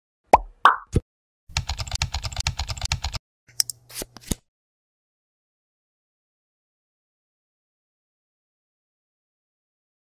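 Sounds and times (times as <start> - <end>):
keyboard typing clicks: 1.5 - 3.8.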